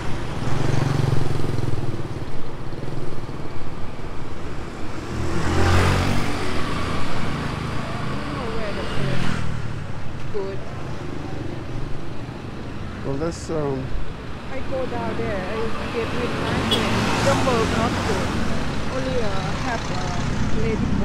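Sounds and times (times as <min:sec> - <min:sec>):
street traffic: 0:00.0 - 0:21.0
motor scooters passing by: 0:04.4 - 0:11.9, 0:14.5 - 0:21.0.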